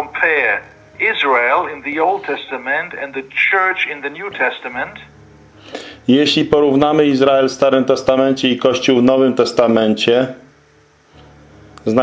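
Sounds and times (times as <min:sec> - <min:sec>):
man speaking over video call: 0:00.0 - 0:05.1.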